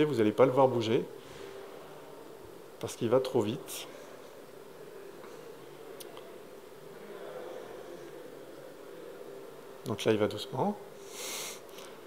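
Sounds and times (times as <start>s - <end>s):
faint buzzing hum: 0.0s - 12.0s
man speaking: 2.8s - 3.9s.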